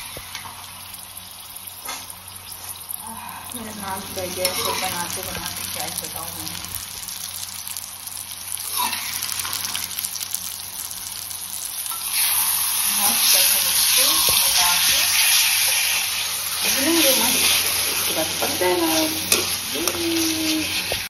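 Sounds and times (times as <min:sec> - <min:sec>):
chicken sizzling in hot oil: 0:00.0 - 0:21.0
slotted spoon stirring: 0:11.9 - 0:21.0.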